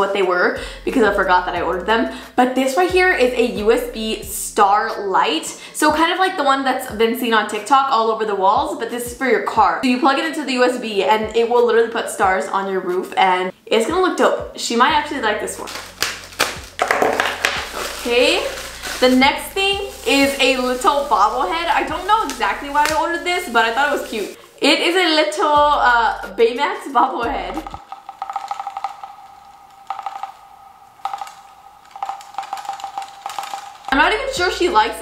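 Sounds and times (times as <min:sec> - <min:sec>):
plastic bag rustling: 0:15.0 - 0:25.3, 0:27.7 - 0:34.0
bobblehead head rattling: 0:15.2 - 0:24.5, 0:27.4 - 0:34.0.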